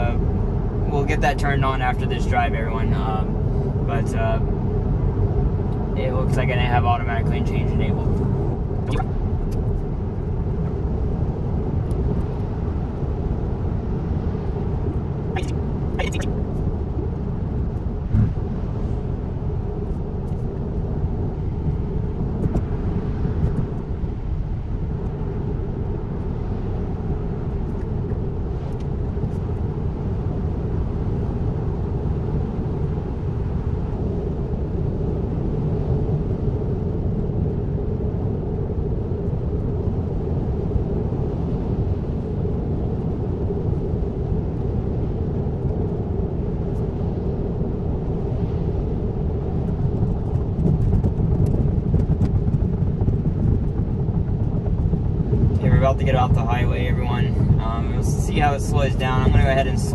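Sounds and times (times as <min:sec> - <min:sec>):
road and tyre noise in car: 0:00.0 - 0:59.9.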